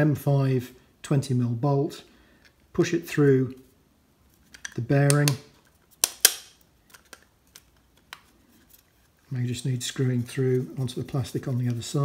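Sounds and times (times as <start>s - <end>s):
metal bolt clicking against plastic: 4.5s - 8.2s.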